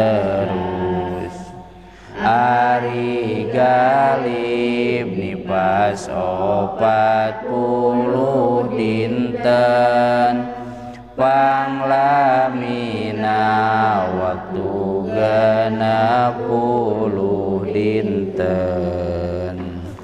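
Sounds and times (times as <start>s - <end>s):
man chanting: 0.0s - 20.0s.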